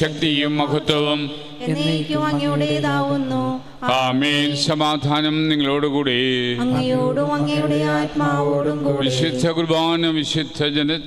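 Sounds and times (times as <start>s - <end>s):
man chanting a sung prayer: 0.0s - 2.9s, 3.8s - 7.4s, 8.4s - 11.0s.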